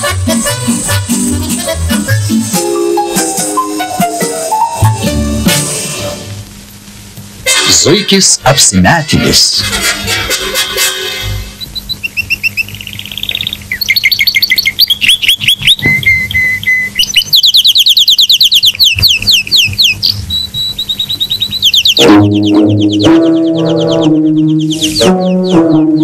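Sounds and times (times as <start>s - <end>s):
low brass-like music: 3.2s - 6.5s, 22.0s - 26.0s
birds chirping: 11.4s - 26.0s.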